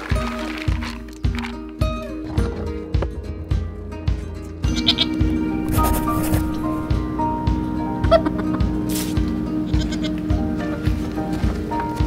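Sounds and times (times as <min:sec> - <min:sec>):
music with steady beat: 0:00.0 - 0:12.0
goat bleating: 0:04.6 - 0:06.8, 0:09.6 - 0:10.2.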